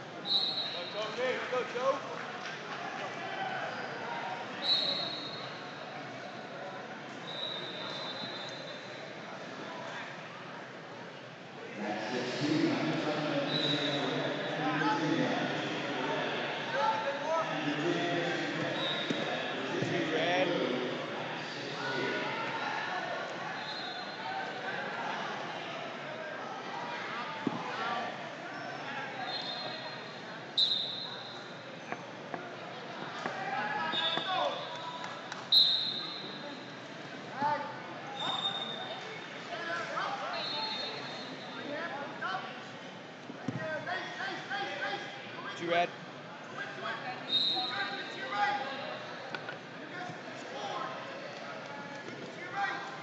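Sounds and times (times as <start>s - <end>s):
people calling out in gym: 33.3s - 36.6s.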